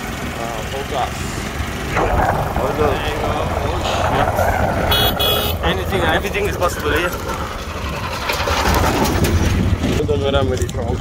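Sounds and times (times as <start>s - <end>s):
vehicle engine rumble: 0.0s - 11.0s
voices: 0.3s - 7.5s
high-pitched horn beep: 4.9s - 5.6s.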